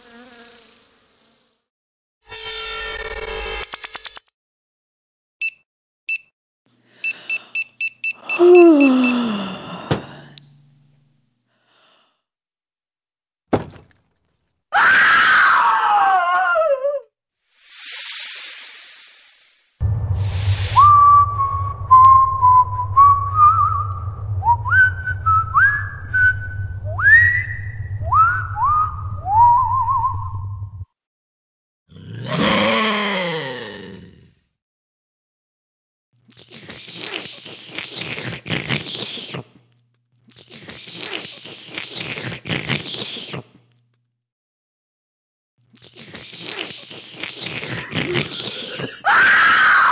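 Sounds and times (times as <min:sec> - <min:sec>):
loud hiss: 0:17.5 - 0:21.0
wet biting and slurping: 0:36.2 - 0:43.8, 0:45.7 - 0:48.9
wailing cry sliding downward: 0:49.1 - 0:49.9.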